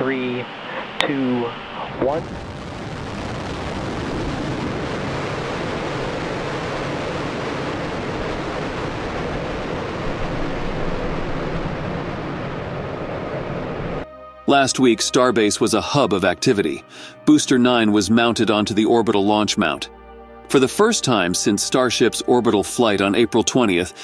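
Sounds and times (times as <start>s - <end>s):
distant rocket engines rumbling: 0.0s - 14.0s.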